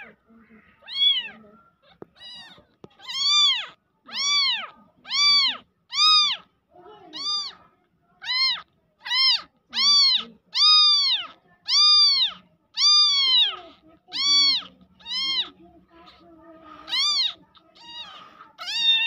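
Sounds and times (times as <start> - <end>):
kitten mewing: 0.0 - 7.6, 8.2 - 19.0.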